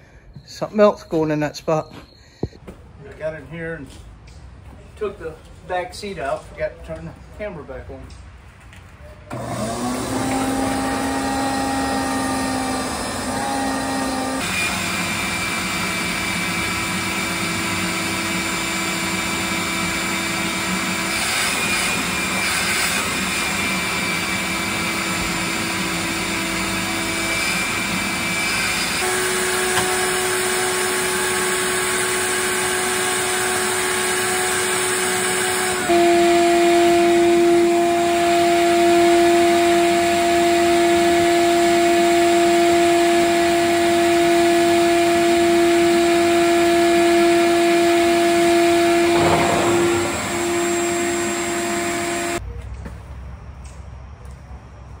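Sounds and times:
shop vacuum running with whine: 0:09.3 - 0:52.4.

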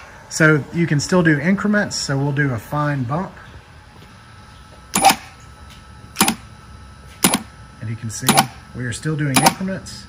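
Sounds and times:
chain hoist clicking: 0:05.0 - 0:05.2, 0:07.2 - 0:07.4.

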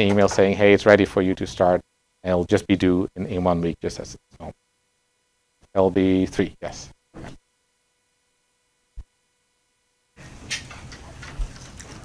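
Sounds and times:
rustling room noise: 0:10.1 - 0:12.0.

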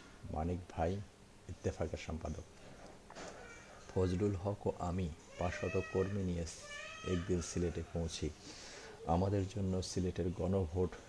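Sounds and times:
man reading aloud: 0:00.2 - 0:02.5, 0:03.9 - 0:08.4, 0:09.0 - 0:11.0.

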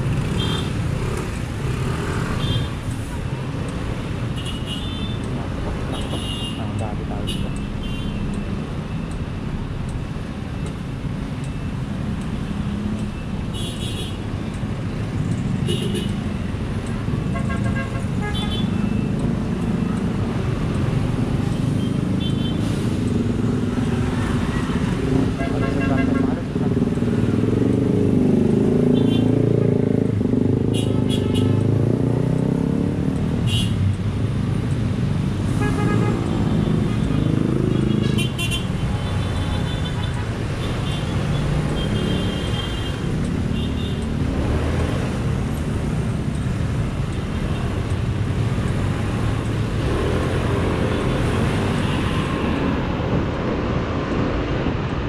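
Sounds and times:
vehicle engines running: 0:14.2 - 0:55.0.

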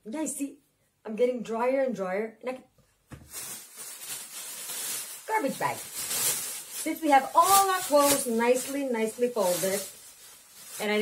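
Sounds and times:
plastic bag rustling: 0:03.1 - 0:11.0.

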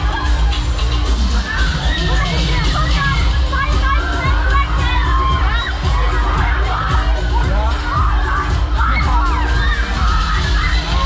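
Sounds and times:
loud music with heavy bass: 0:00.0 - 0:11.0
people screaming and shouting: 0:00.0 - 0:11.0.

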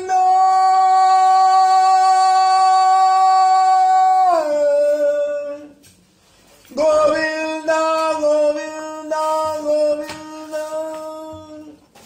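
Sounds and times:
man singing long note: 0:00.0 - 0:05.8.

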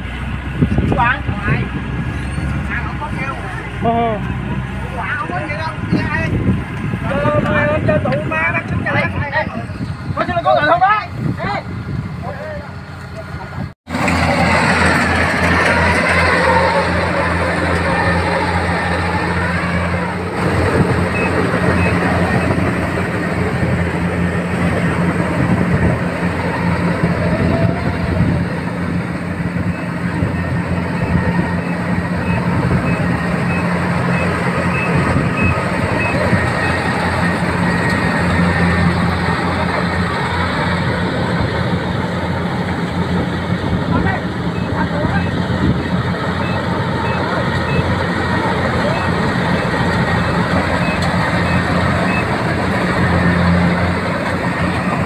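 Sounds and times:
diesel engine humming: 0:00.0 - 0:55.0
people's voices: 0:02.4 - 0:55.0.

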